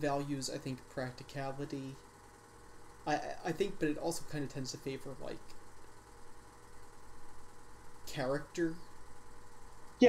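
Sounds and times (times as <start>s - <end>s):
steady low hum: 0.0s - 10.0s
faint hiss: 2.8s - 5.7s.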